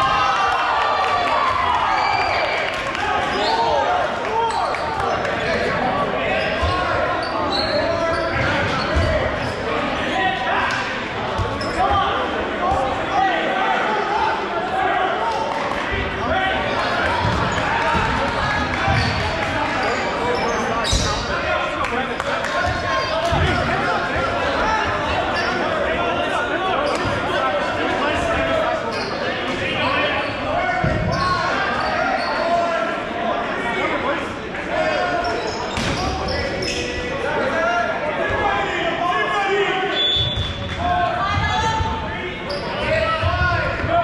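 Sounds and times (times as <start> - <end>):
players chattering and calling: 0.0 - 44.0.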